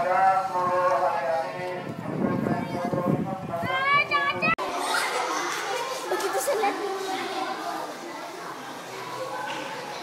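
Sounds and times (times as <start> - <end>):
murmur of voices: 0.0 - 10.0
children chattering: 1.2 - 10.0.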